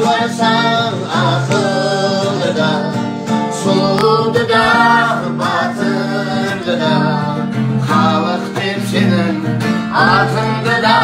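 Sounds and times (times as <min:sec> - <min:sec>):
acoustic guitar accompaniment: 0:00.0 - 0:11.0
boy singing: 0:03.6 - 0:09.3.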